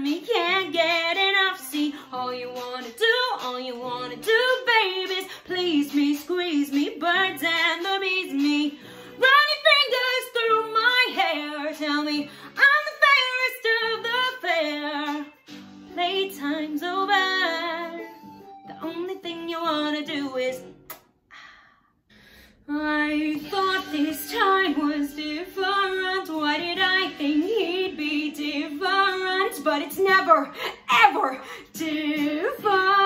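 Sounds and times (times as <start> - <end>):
woman singing: 0.0 - 20.8, 22.6 - 33.0.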